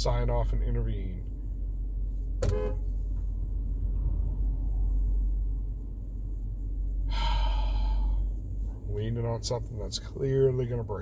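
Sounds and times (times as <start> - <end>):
vehicle cabin rumble: 0.0 - 11.0.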